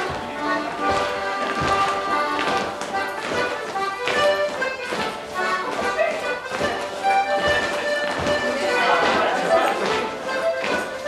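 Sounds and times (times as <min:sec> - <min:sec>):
accordion playing dance tune: 0:00.0 - 0:11.0.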